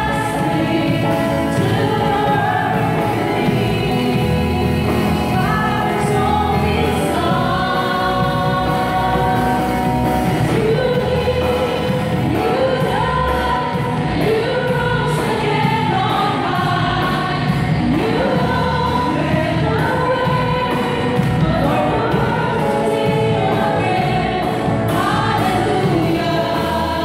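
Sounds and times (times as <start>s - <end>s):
choir backing vocals: 0.0s - 27.0s
musical accompaniment: 0.0s - 27.0s
woman singing into microphone: 0.0s - 27.0s.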